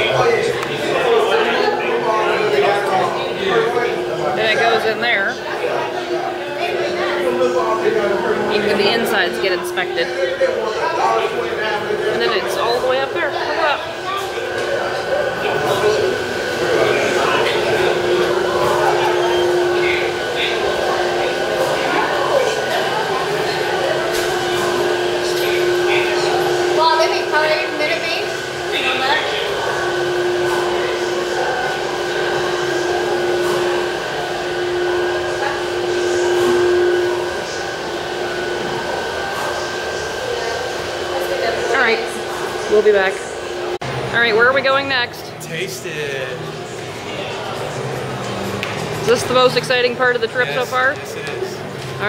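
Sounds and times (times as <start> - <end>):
machinery hum: 0.0 - 52.0.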